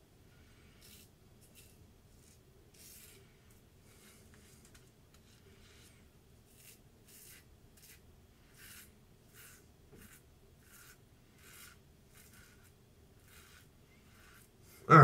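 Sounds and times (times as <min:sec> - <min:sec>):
razor scraping stubble: 0:00.8 - 0:03.2, 0:06.5 - 0:14.8.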